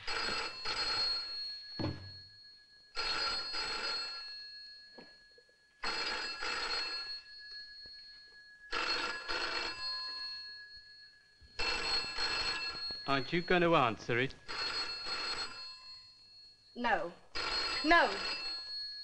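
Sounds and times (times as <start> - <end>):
telephone bell ringing: 0.0 - 19.0.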